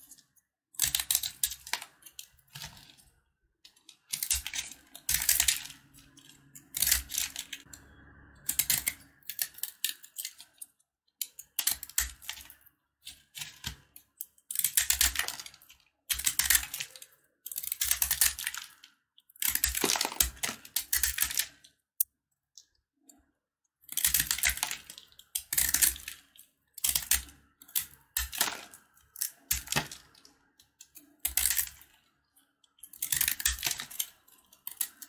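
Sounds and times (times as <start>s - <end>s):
knife blade cutting crumbly soap: 0.0s - 7.7s, 8.5s - 21.8s.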